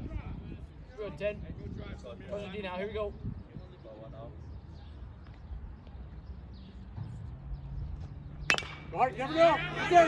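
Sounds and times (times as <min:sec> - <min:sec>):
bat hitting baseball: 0:08.4 - 0:09.2.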